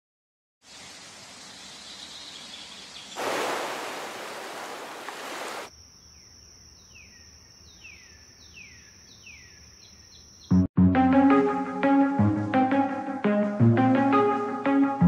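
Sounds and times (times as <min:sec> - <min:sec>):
rushing noise like surf: 0:03.2 - 0:05.7.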